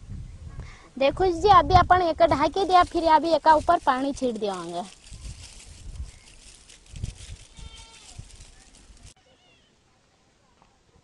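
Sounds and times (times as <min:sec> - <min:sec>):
farm animal bleat: 0:07.4 - 0:08.3.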